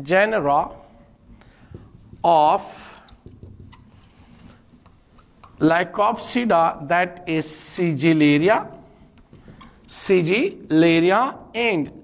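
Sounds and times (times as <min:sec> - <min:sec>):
marker squeaking on whiteboard: 0:01.4 - 0:05.7, 0:08.2 - 0:12.0.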